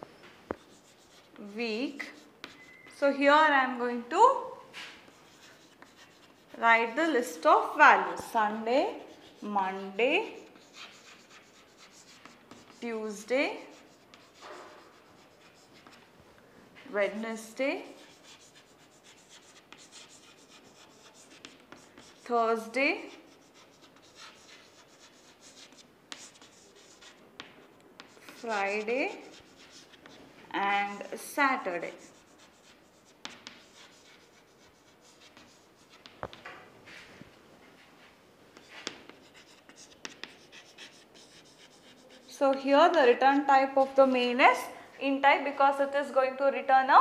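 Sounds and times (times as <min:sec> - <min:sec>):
chalk scratching on chalkboard: 0:00.5 - 0:03.1, 0:04.7 - 0:06.6, 0:08.0 - 0:16.0, 0:17.5 - 0:30.2, 0:30.8 - 0:36.4, 0:38.6 - 0:43.1
chalk tapping on chalkboard: 0:10.2 - 0:12.9, 0:13.6 - 0:16.0, 0:17.9 - 0:22.3, 0:23.0 - 0:30.2, 0:31.7 - 0:36.6, 0:38.6 - 0:43.1.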